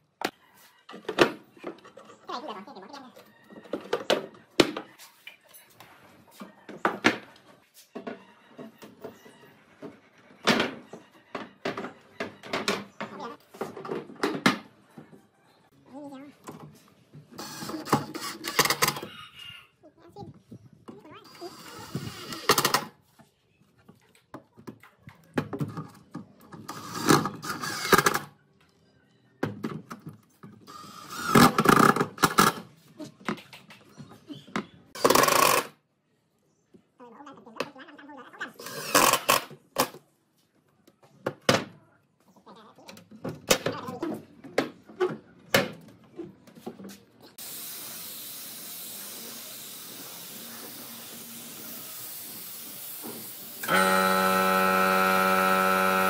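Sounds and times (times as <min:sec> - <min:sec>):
cordless drill driving screws: 0:26.7 - 0:28.2, 0:53.2 - 0:56.0.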